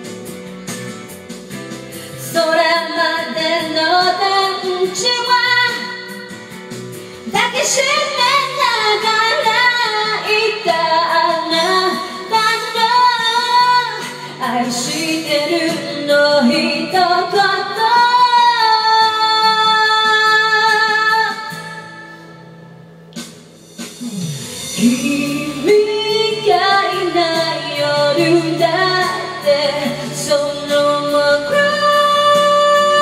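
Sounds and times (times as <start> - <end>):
backing music: 0.0 - 33.0
woman singing with vibrato: 2.2 - 6.4, 7.3 - 22.0, 24.7 - 33.0.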